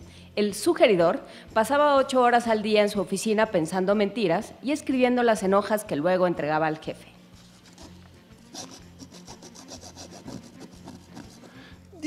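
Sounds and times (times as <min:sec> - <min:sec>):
rubbing scratching strokes: 0:07.4 - 0:11.6.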